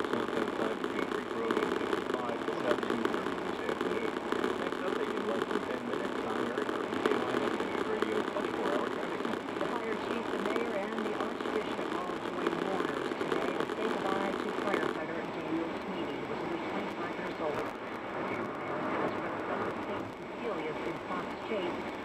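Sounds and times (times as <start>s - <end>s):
man talking on radio: 0.0s - 21.7s.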